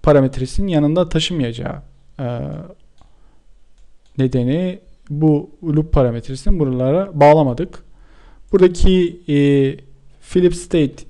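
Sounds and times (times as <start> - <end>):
computer mouse clicks: 2.8 - 4.2.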